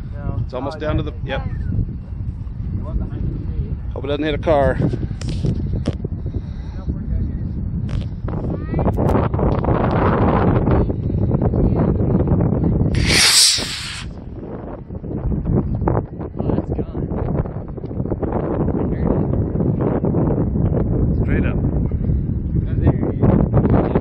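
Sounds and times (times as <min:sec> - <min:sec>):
wind buffeting microphone: 0:00.0 - 0:24.0
hissing rustle: 0:13.0 - 0:14.1.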